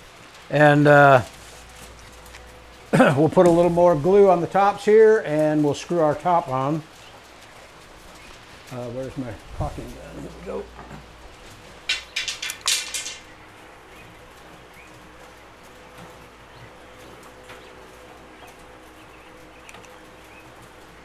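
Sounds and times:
steady low hum: 0.0s - 21.0s
caulking gun clicking and rattling: 11.8s - 13.3s.

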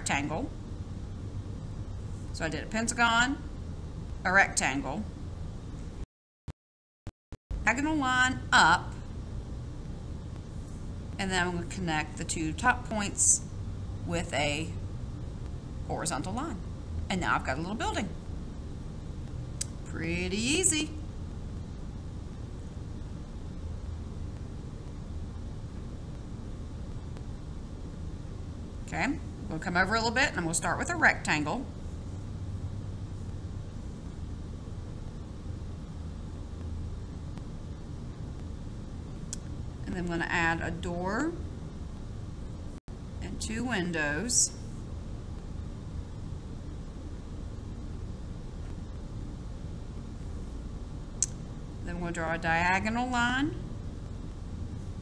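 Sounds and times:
low background rumble: 0.0s - 6.0s, 7.5s - 55.0s
low background hum: 0.0s - 6.1s, 7.5s - 55.0s.

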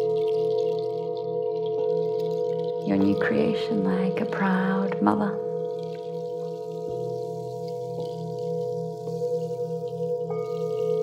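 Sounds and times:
singing bowl ringing: 0.0s - 11.0s.

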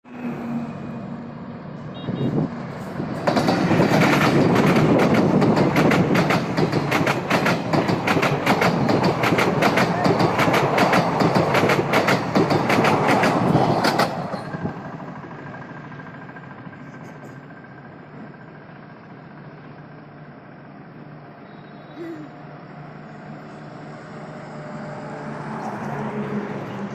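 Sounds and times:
road traffic rumble: 0.0s - 26.9s
train wheels clattering: 2.8s - 18.4s.

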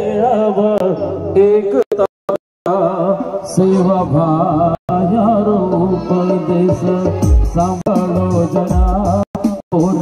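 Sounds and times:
man singing through a microphone: 0.0s - 10.0s
electronic keyboard accompaniment: 4.9s - 10.0s.

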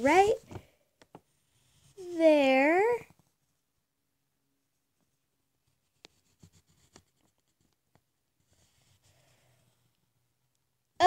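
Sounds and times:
pencil scratching on paper: 1.4s - 2.3s, 6.0s - 7.7s, 8.4s - 9.8s.

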